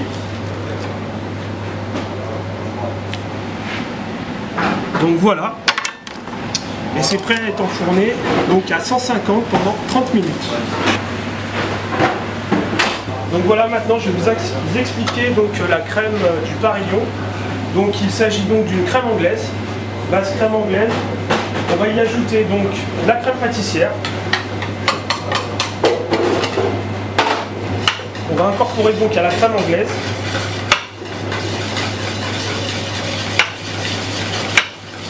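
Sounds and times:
utensil scraping a metal bowl: 0:28.1 - 0:35.0.

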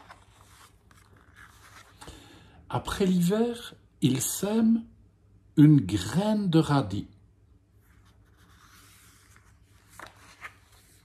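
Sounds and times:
book page turning: 0:00.0 - 0:02.1, 0:07.8 - 0:11.0.

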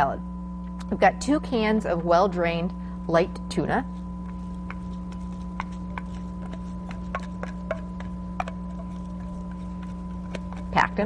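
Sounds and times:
steady electrical hum: 0:00.0 - 0:11.0
utensil tapping a dish: 0:04.2 - 0:11.0.

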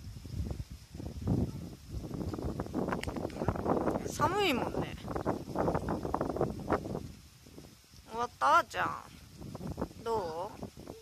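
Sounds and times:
rustling crackles: 0:00.0 - 0:11.0
wind rumbling on microphone: 0:00.0 - 0:11.0.

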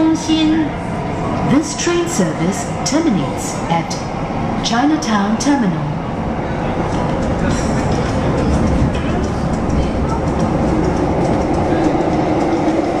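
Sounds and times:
metro train rumble: 0:00.0 - 0:13.0
train hum: 0:00.0 - 0:13.0
rail clicks: 0:06.8 - 0:13.0.

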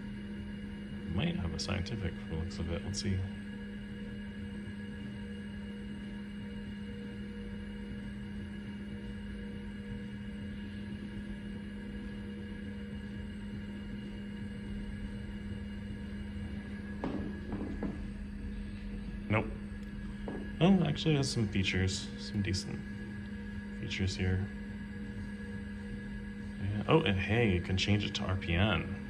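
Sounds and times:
computer machine hum: 0:00.0 - 0:29.0.

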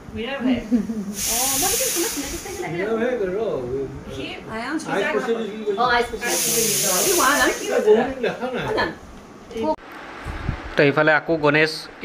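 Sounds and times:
steady high hiss: 0:00.6 - 0:03.4, 0:05.9 - 0:08.6
voices talking: 0:04.4 - 0:09.0.

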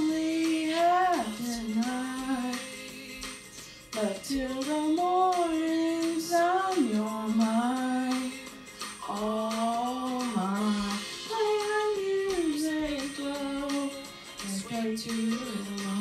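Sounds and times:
backing music: 0:00.0 - 0:16.0
woman singing pop song: 0:00.0 - 0:16.0.

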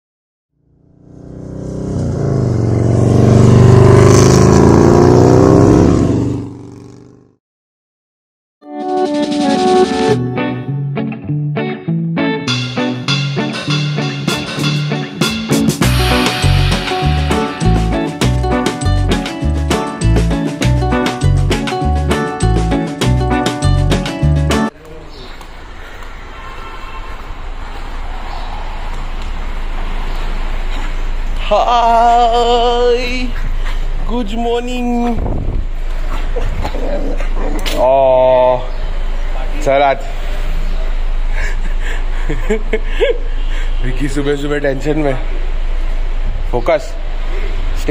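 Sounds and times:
road traffic rumble: 0:00.6 - 0:07.3, 0:12.5 - 0:47.9
motorcycle engine revving: 0:00.6 - 0:07.4.

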